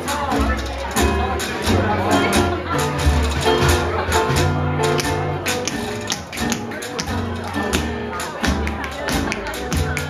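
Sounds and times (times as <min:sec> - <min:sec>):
jug band playing: 0:00.0 - 0:10.0
sharp percussive taps: 0:04.4 - 0:10.0.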